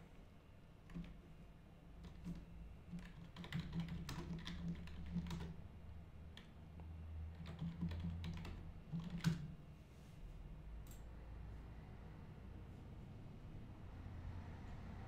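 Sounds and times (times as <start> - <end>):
typing on computer keyboard: 0.9 - 1.3, 2.0 - 5.6, 7.3 - 9.6.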